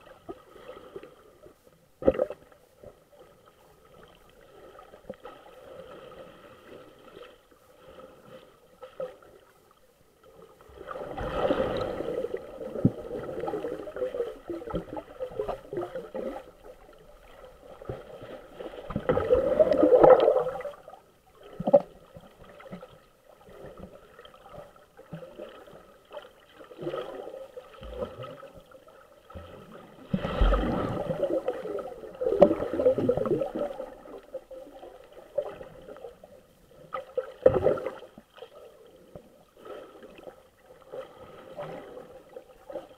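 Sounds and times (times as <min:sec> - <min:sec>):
muffled water swishing underwater: 0:00.0 - 0:42.9
water surges: 0:00.0 - 0:42.9.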